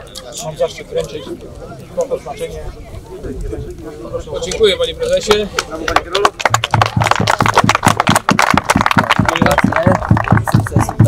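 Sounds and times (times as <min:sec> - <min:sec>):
small group applauding: 0:05.5 - 0:11.0.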